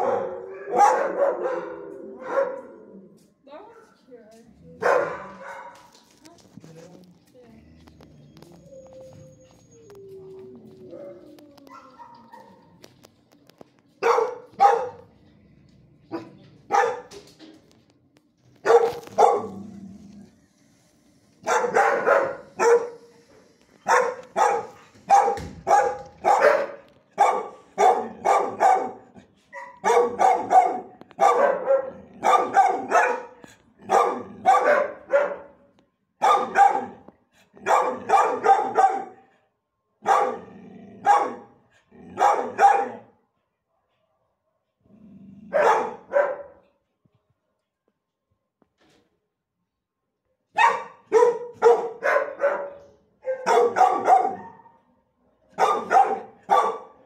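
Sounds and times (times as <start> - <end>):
dog barking: 0.0 - 2.9, 4.8 - 6.0, 14.0 - 15.1, 16.1 - 17.1, 18.6 - 19.5, 21.4 - 23.1, 23.8 - 39.3, 40.0 - 43.2, 45.5 - 46.6, 50.5 - 54.8, 55.5 - 57.0.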